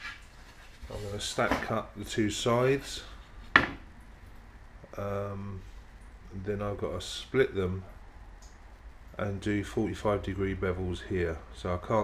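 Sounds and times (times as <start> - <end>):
wooden knock on workbench: 3.5 - 3.8.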